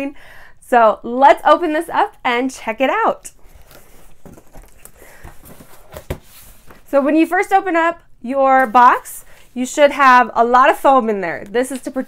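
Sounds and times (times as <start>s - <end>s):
cardboard rustling and scraping: 3.3s - 6.9s.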